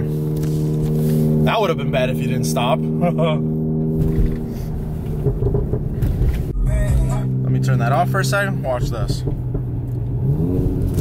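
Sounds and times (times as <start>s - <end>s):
car road noise: 0.0s - 11.0s
engine drone: 0.0s - 11.0s.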